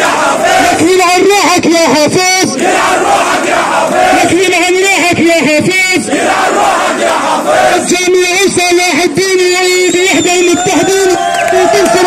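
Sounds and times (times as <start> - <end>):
crowd chanting: 0.0 - 1.3, 2.4 - 7.9.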